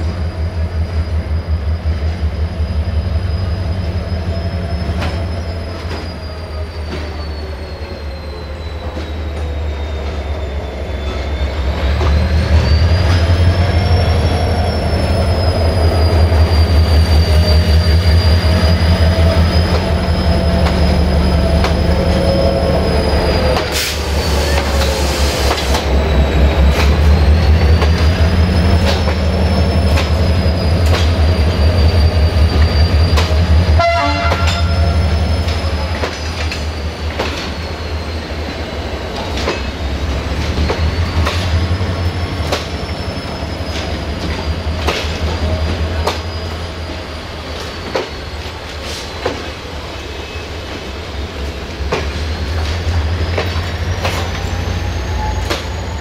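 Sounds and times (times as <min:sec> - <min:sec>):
locomotive engine rumble: 0:00.0 - 0:56.0
wheel squeal: 0:00.3 - 0:56.0.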